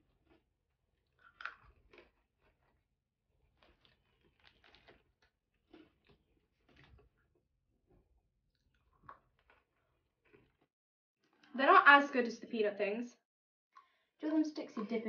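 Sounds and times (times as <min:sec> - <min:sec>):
pretzel sticks crunching: 0:03.6 - 0:05.0.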